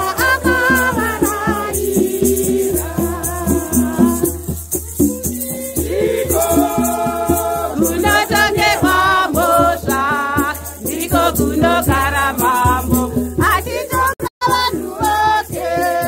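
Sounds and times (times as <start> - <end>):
women singing a hymn: 0.0 - 16.0.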